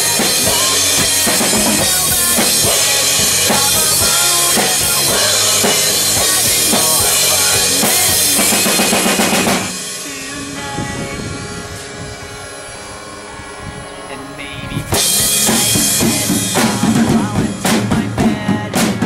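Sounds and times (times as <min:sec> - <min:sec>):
drum kit played hard: 0:00.0 - 0:14.1, 0:14.8 - 0:19.0
recorded pop-punk song: 0:00.0 - 0:19.0.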